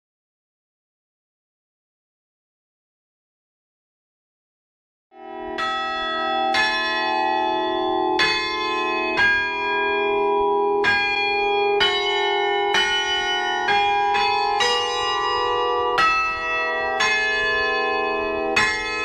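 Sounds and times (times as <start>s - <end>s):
church bells pealing: 5.2s - 19.0s.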